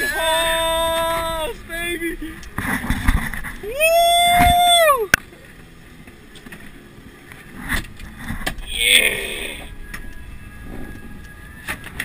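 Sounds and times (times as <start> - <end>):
boat background noise: 0.0 - 12.0.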